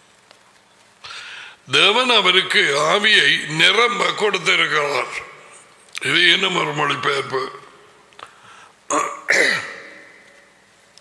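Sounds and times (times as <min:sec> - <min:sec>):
man clearing his throat: 0:08.9 - 0:10.2.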